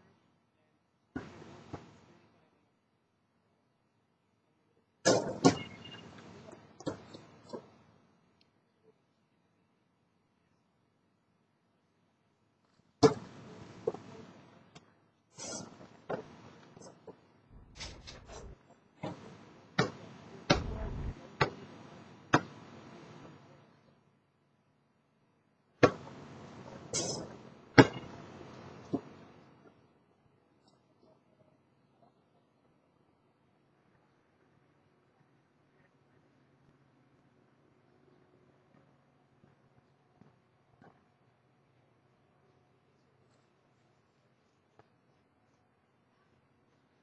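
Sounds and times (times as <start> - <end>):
basketball striking hard surface: 20.5 - 21.1.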